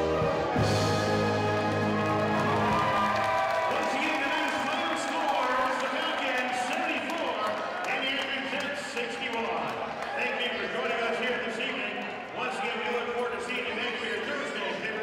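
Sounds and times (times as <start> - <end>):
basketball game in arena: 0.0 - 15.0
man talking: 3.7 - 15.0.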